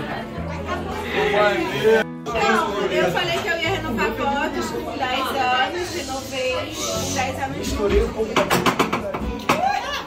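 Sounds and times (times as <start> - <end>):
background music: 0.0 - 10.0
crowd chatting: 0.0 - 10.0.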